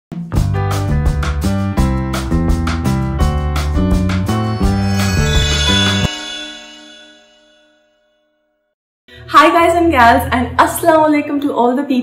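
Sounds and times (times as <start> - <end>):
bell-like clang: 4.5 - 8.5.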